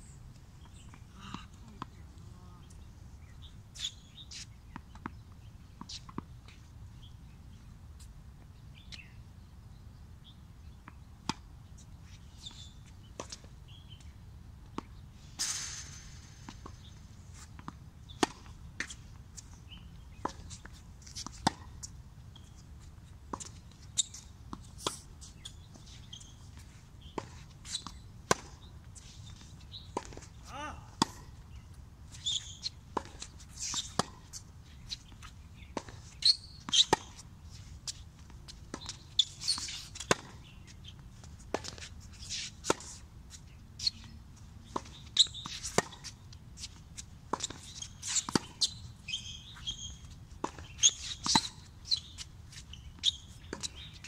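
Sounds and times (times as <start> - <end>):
rackets striking tennis ball: 15.4 - 18.5
tennis ball bouncing: 32.9 - 34.4, 35.1 - 37.2, 44.7 - 53.9.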